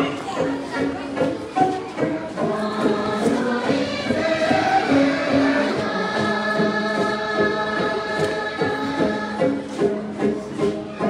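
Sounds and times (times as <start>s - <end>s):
group singing: 2.0s - 10.5s.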